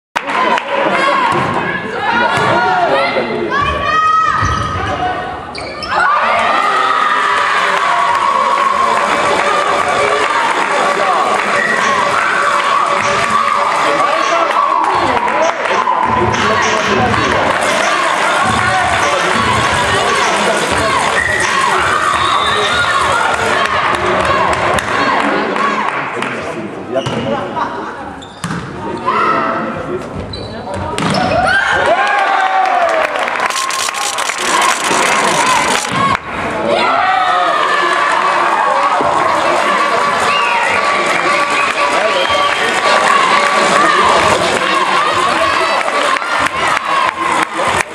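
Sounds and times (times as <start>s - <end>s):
crowd shouting and cheering: 0.2s - 47.9s.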